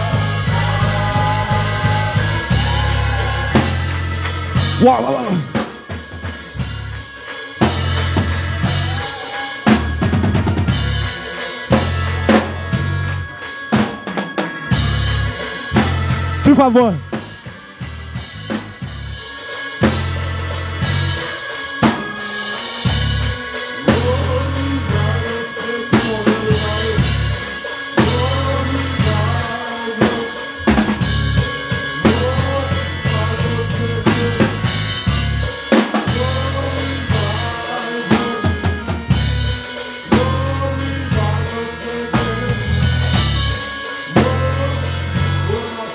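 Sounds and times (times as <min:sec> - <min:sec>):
deep electric bass guitar: 0:00.0 - 0:09.1, 0:09.7 - 0:13.3, 0:14.7 - 0:19.2, 0:22.9 - 0:25.4, 0:26.0 - 0:27.4, 0:28.0 - 0:29.5, 0:30.6 - 0:37.6, 0:38.2 - 0:45.7
drums and cymbals groove: 0:00.0 - 0:45.9.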